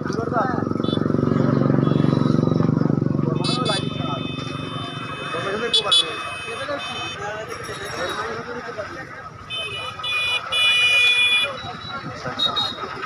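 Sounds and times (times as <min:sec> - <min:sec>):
people's voices: 0:00.0 - 0:13.0
motorcycle engine passing: 0:00.1 - 0:05.6.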